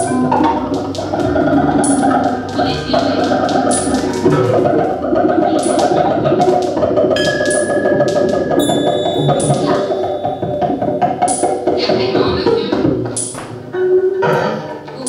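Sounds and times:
experimental electronic music: 0.0 - 15.0.

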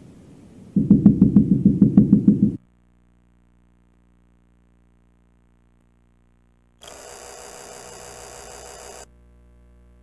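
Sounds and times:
loud static hiss: 0.0 - 10.0
low electrical hum: 0.0 - 10.0.

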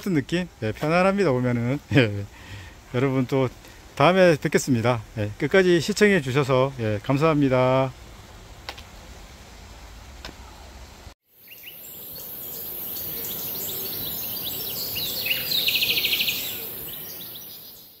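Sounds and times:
steady high hiss: 0.0 - 18.0
birds chirping: 11.3 - 18.0
bird trill: 11.4 - 18.0.

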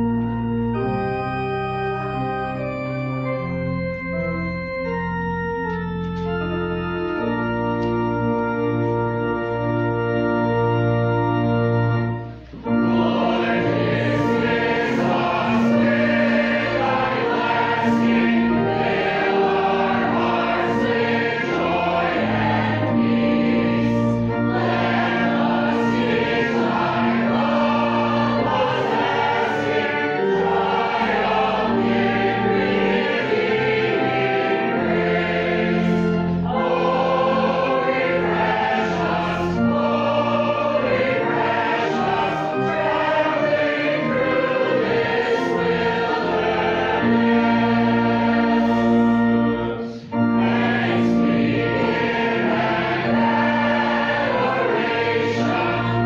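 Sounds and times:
accompaniment of held notes: 0.0 - 56.0
congregation singing a hymn: 0.0 - 56.0.

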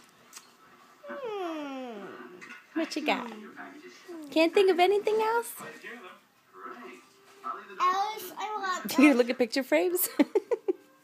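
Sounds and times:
girl humming hmmm: 1.1 - 2.3.

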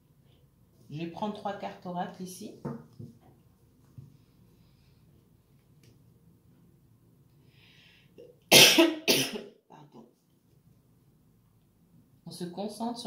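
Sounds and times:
person coughing: 8.5 - 9.6.

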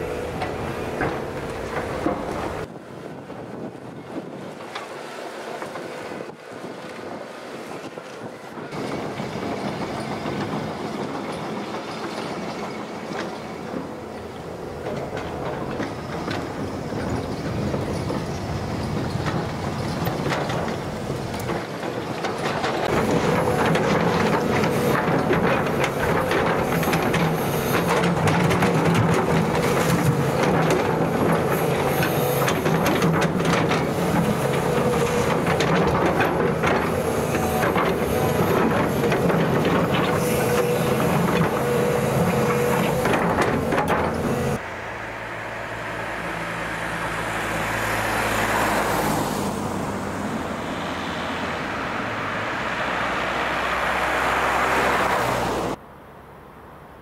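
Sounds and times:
diesel engine running under load: 0.0 - 56.6
road traffic rushing: 0.0 - 57.0.

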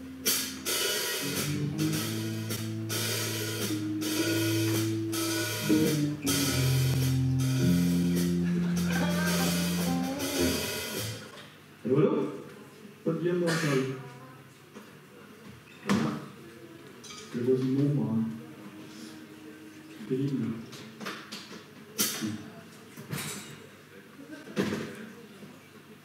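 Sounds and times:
bass notes: 0.0 - 11.2
keyboard notes: 0.0 - 11.2, 18.1 - 20.7
drum kit with cymbal hits: 0.0 - 11.3, 21.9 - 22.5
electric guitar: 0.0 - 11.3.

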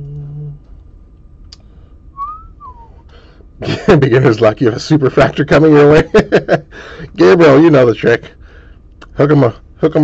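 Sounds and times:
person whistling sliding notes: 2.2 - 3.0.

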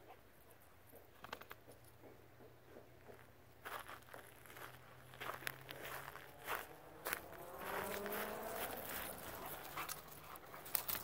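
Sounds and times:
footsteps and paws on dry ground: 0.0 - 11.0.

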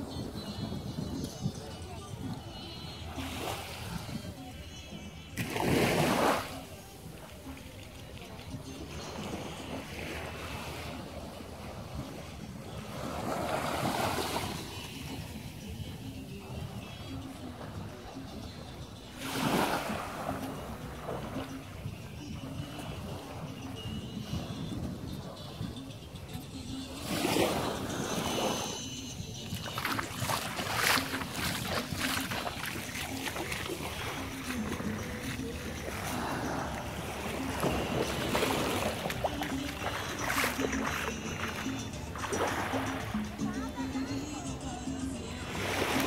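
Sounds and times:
wind rumbling on microphone: 0.0 - 5.5, 20.6 - 41.6
small waves washing onto sand: 0.0 - 25.6, 26.9 - 46.0.

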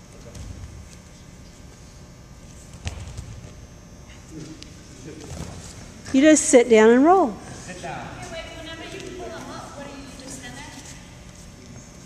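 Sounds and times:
low gym background hum: 0.0 - 12.0.

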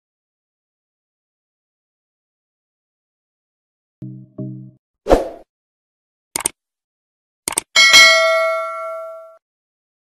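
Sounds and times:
notification bell ding: 7.8 - 9.4.

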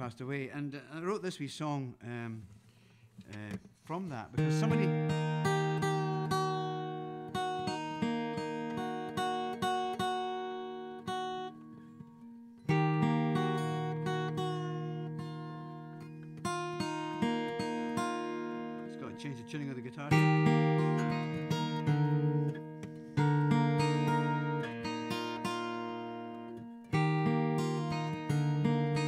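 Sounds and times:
fingerpicked acoustic guitar: 2.4 - 29.0.

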